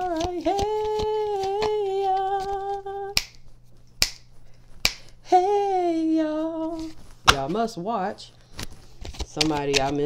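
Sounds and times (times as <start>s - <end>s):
sharp snaps: 3.1s - 5.1s.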